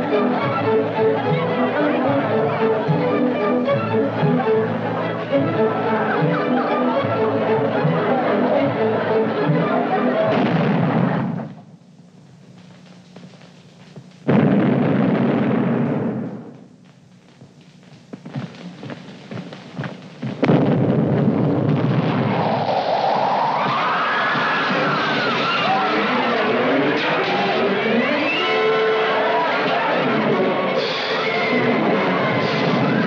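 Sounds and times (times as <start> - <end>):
orchestral dance music: 0.0 - 10.2
sustained noise burst: 0.0 - 33.0
cannon booms: 10.3 - 11.5, 14.3 - 16.5, 20.3 - 22.5.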